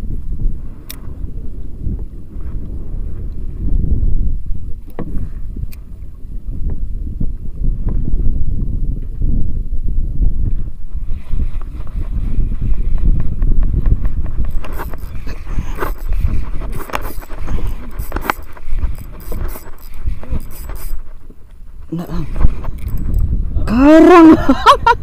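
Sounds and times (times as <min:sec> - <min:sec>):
wind buffeting microphone: 0:00.0 - 0:25.0
fishing rod and reel clicks: 0:00.8 - 0:01.2, 0:04.8 - 0:05.9, 0:13.8 - 0:23.5.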